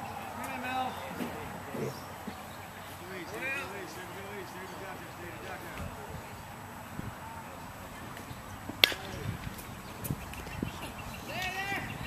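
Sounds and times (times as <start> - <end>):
people shouting: 0.0 - 5.2, 11.2 - 12.0
baseball hitting mitt crack: 8.7 - 10.4.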